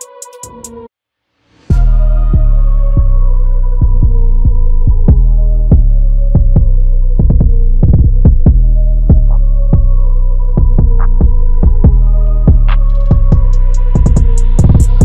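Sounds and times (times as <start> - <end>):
drill beat with heavy bass: 1.7 - 15.0.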